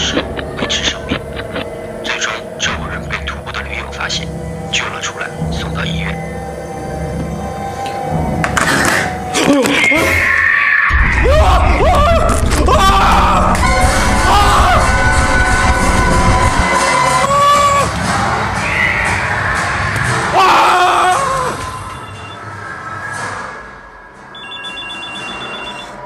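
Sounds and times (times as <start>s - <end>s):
eerie music: 0.0s - 26.0s
people screaming in fright: 9.7s - 15.0s, 17.2s - 18.0s, 20.2s - 21.6s
heavy low rumble: 10.9s - 16.8s
telephone ringing: 24.4s - 26.0s.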